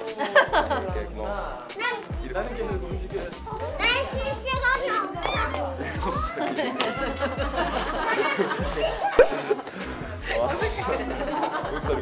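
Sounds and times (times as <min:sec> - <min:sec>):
music with bass and kick drum: 0:00.1 - 0:01.5
young children chattering: 0:01.6 - 0:11.6.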